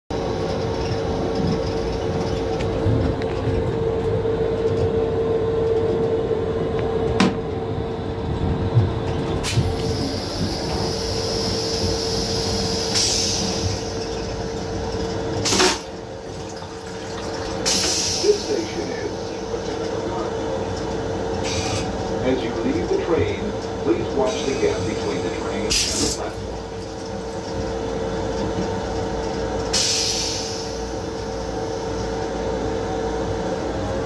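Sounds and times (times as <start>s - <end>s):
train running rumble: 0.1s - 34.0s
hiss: 9.7s - 14.0s, 17.6s - 18.6s, 21.4s - 21.9s, 29.8s - 30.9s.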